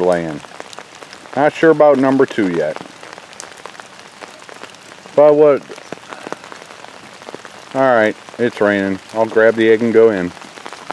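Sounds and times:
raindrops ticking close by: 0.0s - 10.9s
steady rain falling: 0.0s - 10.9s.

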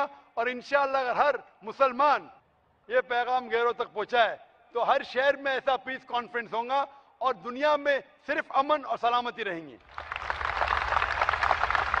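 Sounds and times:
large audience applauding: 9.8s - 12.0s.

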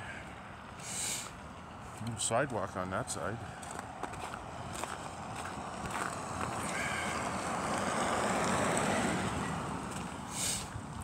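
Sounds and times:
vehicle driving past on wet road: 5.0s - 10.8s.

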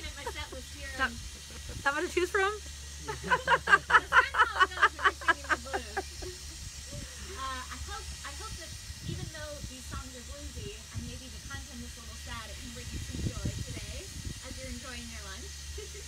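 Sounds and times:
woman laughing: 0.0s - 2.3s, 3.0s - 7.7s.

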